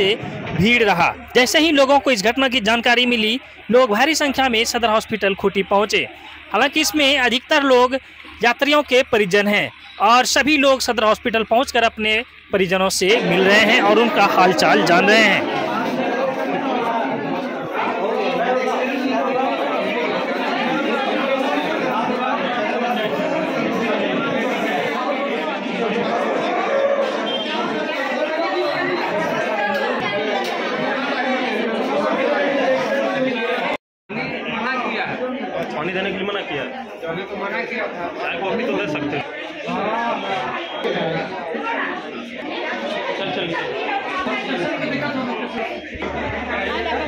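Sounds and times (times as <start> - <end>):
babble of overlapping voices: 0.0 - 47.0
crowd chatter: 0.0 - 47.0.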